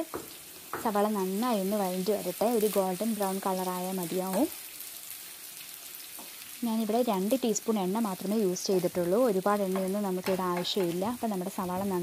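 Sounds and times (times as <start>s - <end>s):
onions sizzling in frying pan: 0.0s - 12.0s.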